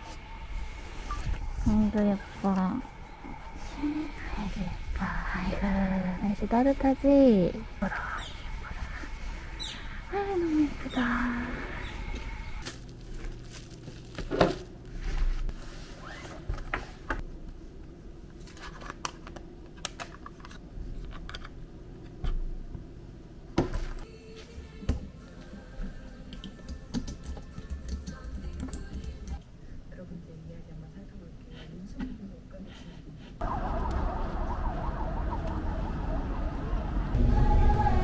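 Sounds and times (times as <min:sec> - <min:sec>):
emergency siren warbling: 0:33.4 - 0:38.0
street traffic rumble: 0:33.4 - 0:38.0.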